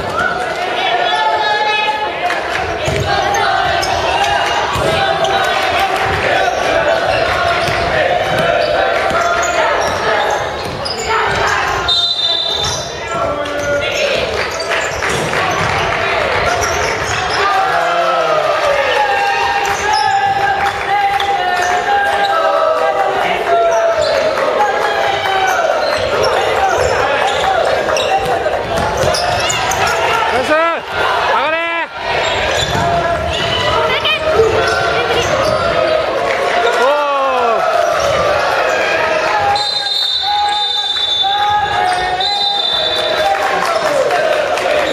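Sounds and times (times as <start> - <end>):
players calling out: 0.0 - 44.9
sneaker squeaks: 2.8 - 5.5, 7.4 - 17.6, 19.6 - 20.3, 25.4 - 30.3, 32.1 - 36.0, 37.8 - 43.1
basketball bouncing on wooden floor: 10.6 - 11.5.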